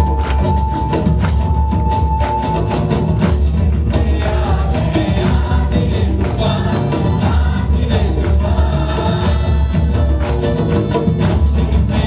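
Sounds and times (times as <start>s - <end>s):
hands clapping: 0.0s - 12.0s
steady percussion beat: 0.0s - 12.0s
voices singing together: 3.2s - 12.0s.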